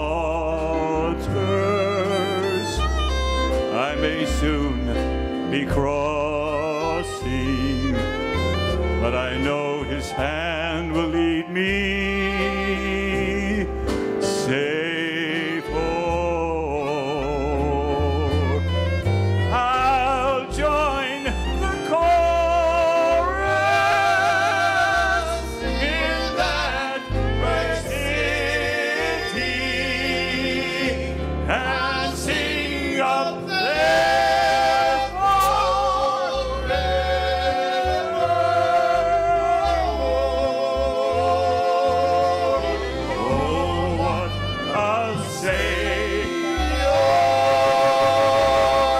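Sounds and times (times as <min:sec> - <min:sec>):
bass: 0:00.0 - 0:48.9
male trio singing in harmony: 0:00.0 - 0:48.9
piano: 0:00.0 - 0:48.9
fiddle playing long notes: 0:00.7 - 0:11.6, 0:15.2 - 0:48.9.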